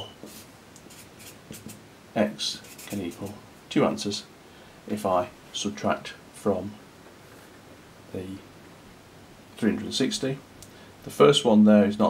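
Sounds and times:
marker drawing on paper: 0:00.2 - 0:01.8, 0:02.6 - 0:03.4.

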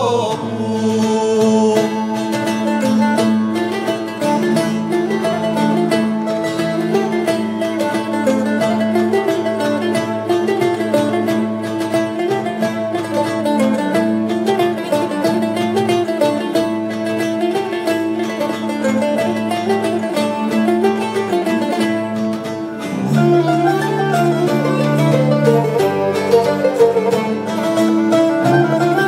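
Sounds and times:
bowed lyra: 0:00.0 - 0:29.0
plucked lute and mandolin: 0:00.0 - 0:29.0.

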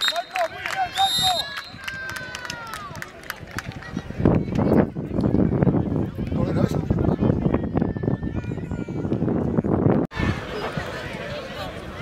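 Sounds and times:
referee's whistle blast: 0:00.0 - 0:01.8.

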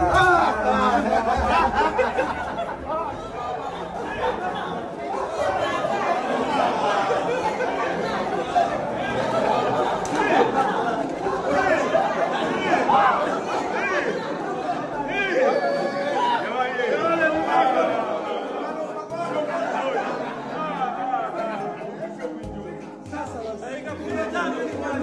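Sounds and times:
people talking over one another: 0:00.0 - 0:25.0.

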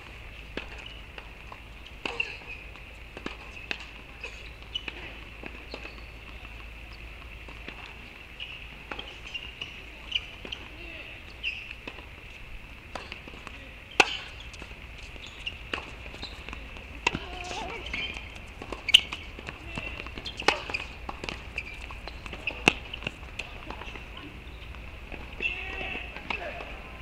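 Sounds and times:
racket striking tennis ball: 0:12.9 - 0:14.4, 0:15.7 - 0:24.0.

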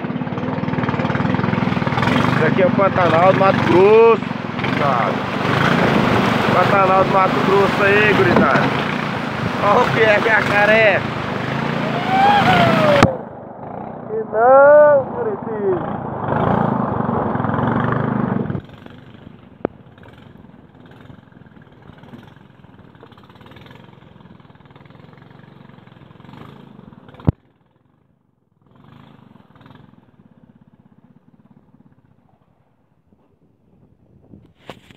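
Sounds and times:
outboard motor running: 0:00.0 - 0:27.8, 0:29.3 - 0:34.9.

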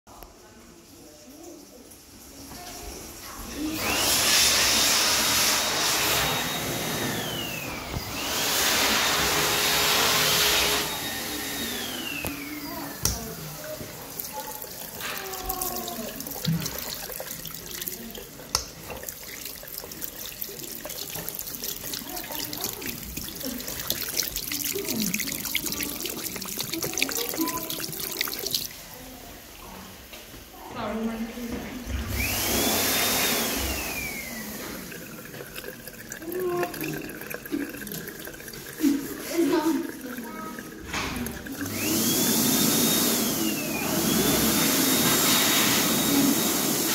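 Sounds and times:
faint voices: 0:10.9 - 0:42.0
tap water splashing into basin: 0:12.2 - 0:28.8, 0:31.4 - 0:43.2.

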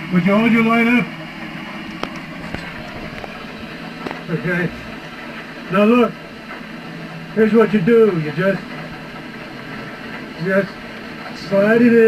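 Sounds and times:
background hum and hiss: 0:00.0 - 0:12.0.

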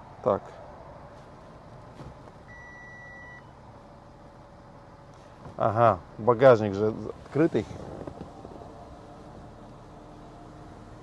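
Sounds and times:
steady electronic beep: 0:02.5 - 0:03.5.

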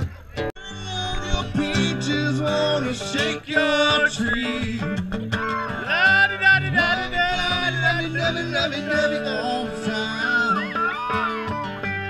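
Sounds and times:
country song with guitar: 0:00.0 - 0:12.0
person singing: 0:00.6 - 0:04.9, 0:05.8 - 0:11.6.

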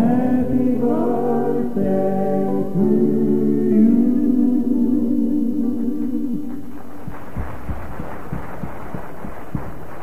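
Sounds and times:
soft low thumps: 0:06.9 - 0:10.0.

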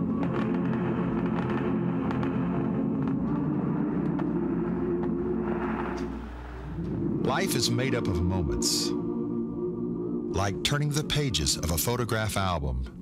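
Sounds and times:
record surface crackle clicks: 0:00.0 - 0:03.4.

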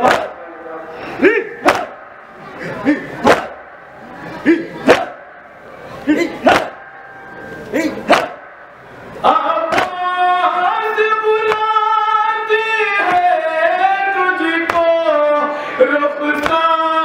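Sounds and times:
man chanting a lament: 0:00.0 - 0:02.0, 0:09.2 - 0:17.0
chest-beating slaps: 0:01.6 - 0:02.0, 0:03.2 - 0:03.6, 0:04.8 - 0:05.2, 0:06.4 - 0:06.8, 0:08.1 - 0:08.6.

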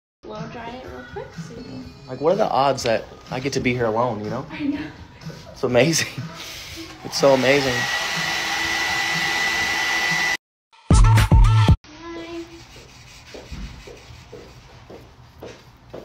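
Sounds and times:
hair dryer blowing: 0:06.4 - 0:10.4.

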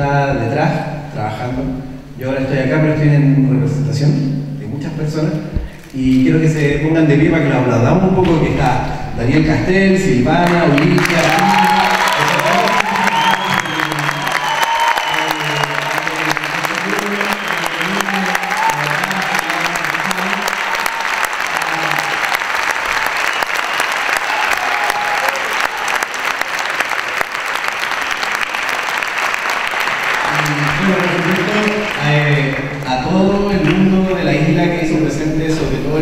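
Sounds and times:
audience applauding: 0:10.3 - 0:34.3.

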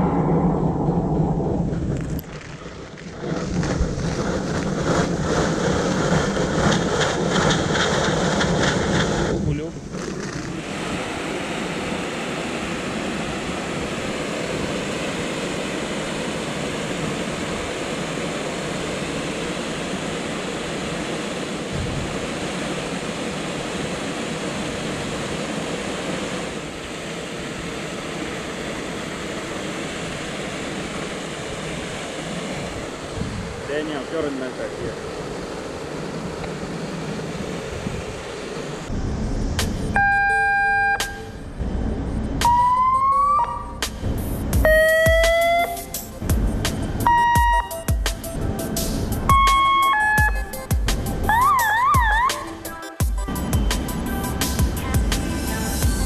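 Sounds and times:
foam monitor jet rushing: 0:00.0 - 0:56.0
wind: 0:00.0 - 0:56.0
electronic alarm tone: 0:40.0 - 0:41.4, 0:42.4 - 0:43.8, 0:44.6 - 0:45.9, 0:47.1 - 0:48.0, 0:49.3 - 0:50.6, 0:51.3 - 0:52.4.

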